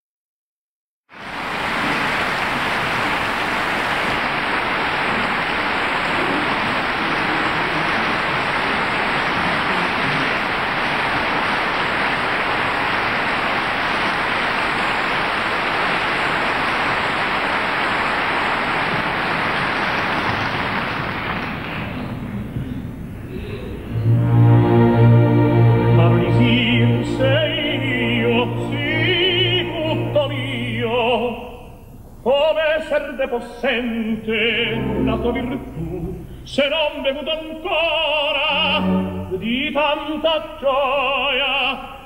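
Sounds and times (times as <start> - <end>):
audience applauding: 1.1 - 22.3.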